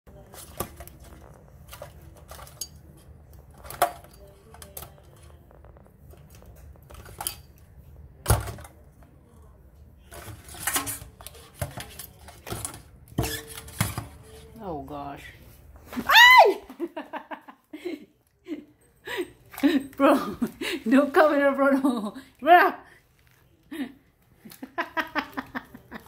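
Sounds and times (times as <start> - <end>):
crab legs scrabbling on metal sink: 0.1 - 5.3, 6.0 - 7.6, 10.0 - 14.5.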